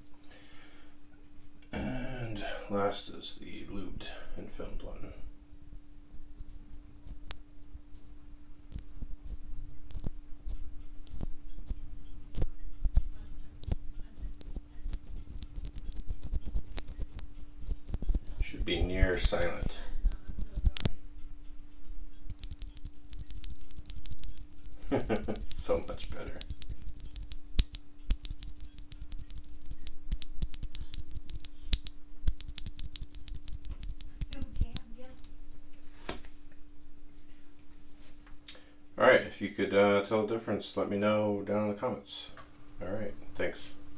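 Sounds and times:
faint steady hum: 0:00.0 - 0:43.9.

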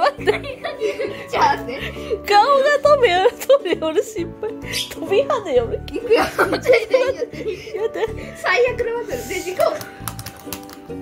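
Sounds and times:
boys laughing: 0:00.0 - 0:02.1, 0:06.0 - 0:08.3
boys talking excitedly: 0:01.2 - 0:01.9.

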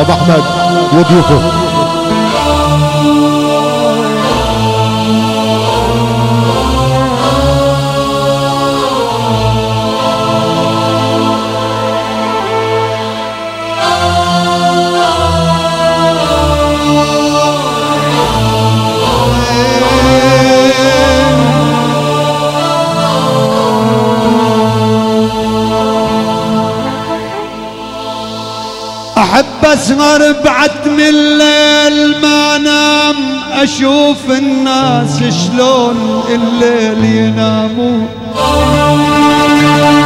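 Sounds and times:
bass notes: 0:00.0 - 0:12.2
violin melody: 0:00.0 - 0:29.2, 0:38.4 - 0:40.0
band music over loudspeakers: 0:00.0 - 0:40.0.

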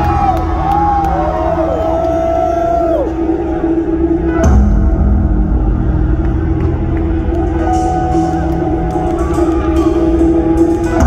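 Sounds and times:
loud bass drone concert music: 0:00.0 - 0:11.0.

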